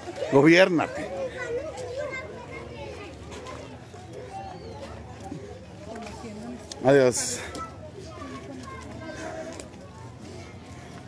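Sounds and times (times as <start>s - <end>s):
child's voice: 1.2s - 3.7s, 7.4s - 9.6s.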